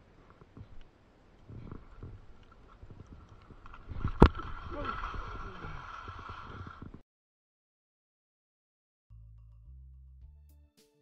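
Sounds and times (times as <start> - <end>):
rumble of movement over snow: 0.0 - 7.0
small crackles: 0.0 - 7.0.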